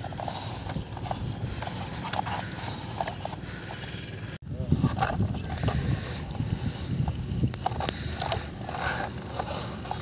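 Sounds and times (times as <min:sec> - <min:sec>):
toy bucket scraping damp sand: 0:00.0 - 0:03.8, 0:04.7 - 0:10.0.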